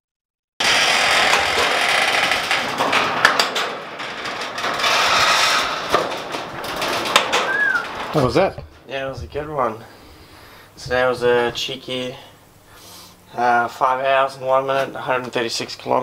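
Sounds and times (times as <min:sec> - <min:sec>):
garage door rattling on tracks: 0:00.6 - 0:11.6
high squeak: 0:07.5 - 0:07.9.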